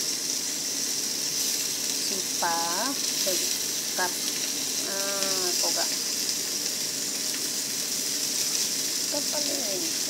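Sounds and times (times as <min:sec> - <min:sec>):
fish sizzling in hot oil: 0:00.0 - 0:10.0.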